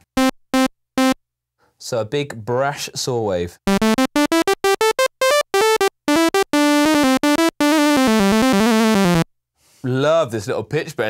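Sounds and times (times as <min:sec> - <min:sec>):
synthesizer sawtooth notes: 0:00.0 - 0:01.2, 0:03.7 - 0:09.2.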